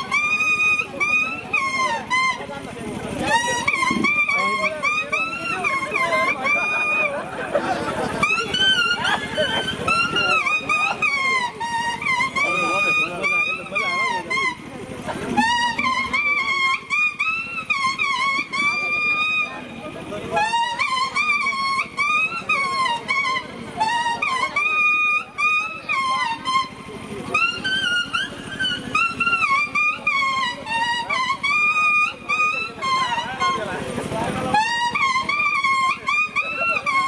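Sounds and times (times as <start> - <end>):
leaf blown as a reed melody: 0.0 - 37.0.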